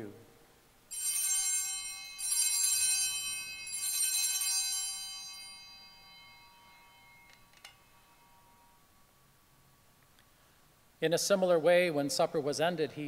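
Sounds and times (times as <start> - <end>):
altar bells ringing: 0.9 - 9.4.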